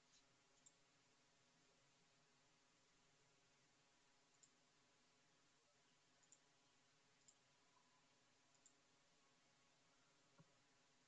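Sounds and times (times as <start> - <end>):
faint clicks: 0.0 - 0.8, 4.3 - 4.6, 6.2 - 6.5, 7.2 - 7.5, 8.5 - 8.8.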